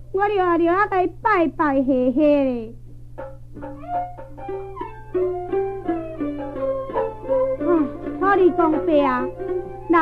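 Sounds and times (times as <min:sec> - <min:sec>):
low recording hum: 0:00.0 - 0:10.0
string accompaniment: 0:03.2 - 0:10.0.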